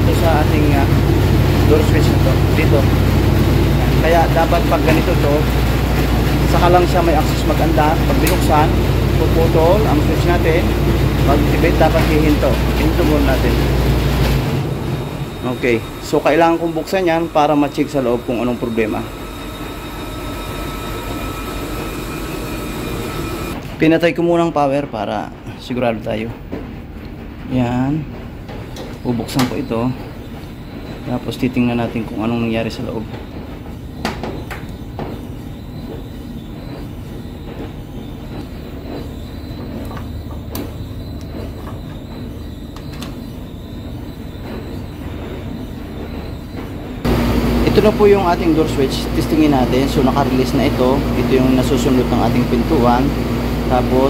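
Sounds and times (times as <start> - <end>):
tumble dryer rumbling: 0.0 - 24.1, 24.7 - 54.0.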